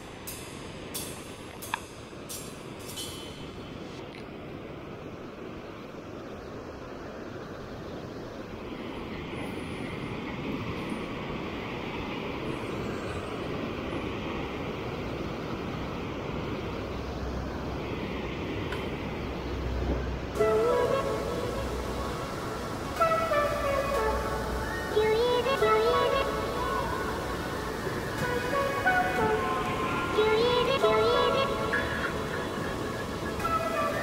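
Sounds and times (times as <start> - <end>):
white water rushing: 0.0 - 34.0
music: 20.4 - 34.0.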